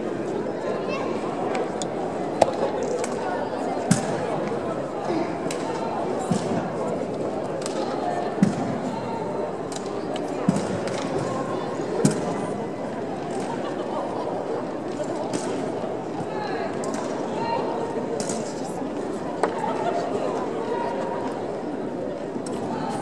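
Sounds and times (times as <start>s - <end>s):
echoing hubbub of voices: 0.0s - 23.0s.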